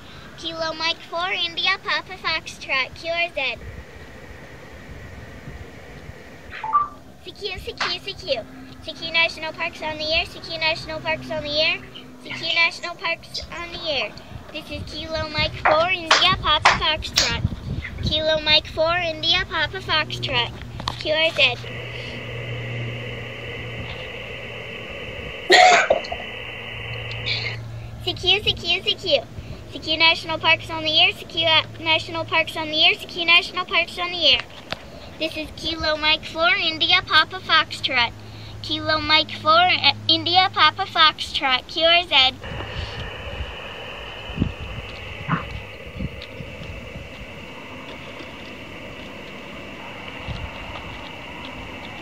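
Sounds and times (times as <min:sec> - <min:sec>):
radio receiver hiss: 0:00.0 - 0:39.2, 0:40.0 - 0:52.0
wind rumble on microphone: 0:00.0 - 0:40.8, 0:42.2 - 0:52.0
person coughing: 0:25.5 - 0:26.0.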